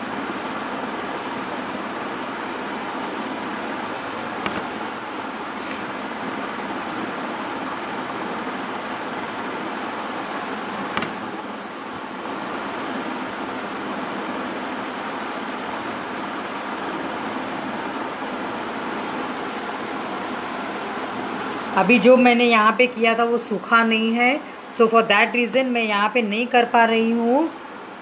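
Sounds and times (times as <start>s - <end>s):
room noise hiss: 0.0s - 28.0s.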